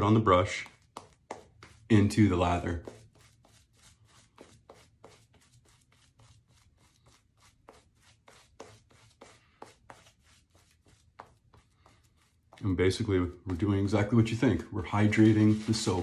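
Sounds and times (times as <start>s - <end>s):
shaving brush swishing on stubble: 1.0s - 16.0s.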